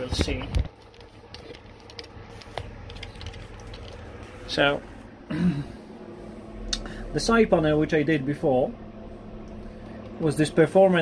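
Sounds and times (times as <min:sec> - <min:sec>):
phone handling rubbing: 0:00.0 - 0:04.4.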